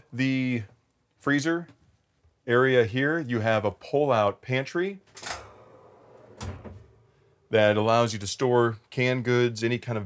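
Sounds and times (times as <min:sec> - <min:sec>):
cabinet sliding open: 0:05.1 - 0:07.2.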